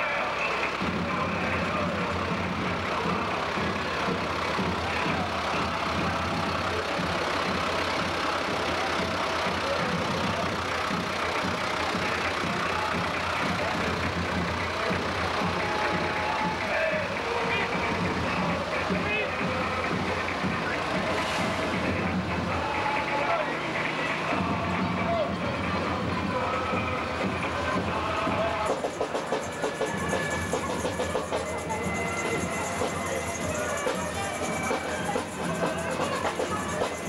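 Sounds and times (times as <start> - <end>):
tractor engine running: 0.0 - 37.0
voices: 0.0 - 37.0.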